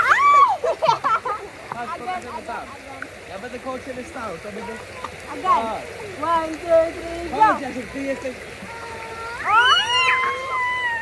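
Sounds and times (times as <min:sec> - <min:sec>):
child squealing: 0:08.7 - 0:11.0.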